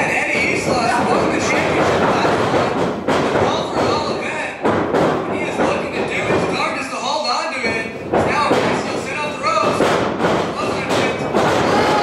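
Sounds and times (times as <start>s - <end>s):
sharp thuds of strikes: 0.4s - 6.6s, 7.7s - 12.0s
people shouting: 11.5s - 12.0s.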